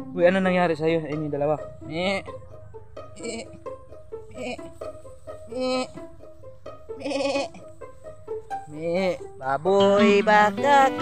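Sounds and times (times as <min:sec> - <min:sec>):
goat bleating: 0:03.2 - 0:03.6, 0:05.5 - 0:06.0, 0:07.0 - 0:07.7.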